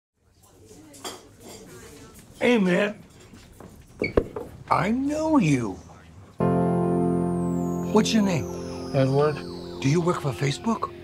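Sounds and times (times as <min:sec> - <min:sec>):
faint background chatter: 0:00.2 - 0:07.5
dishes and cutlery clinking: 0:00.7 - 0:01.9.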